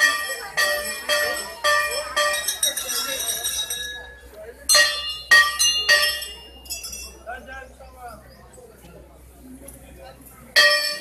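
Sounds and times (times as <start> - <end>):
brass temple bells ringing: 0.0 - 4.1, 4.7 - 7.0, 10.6 - 11.0.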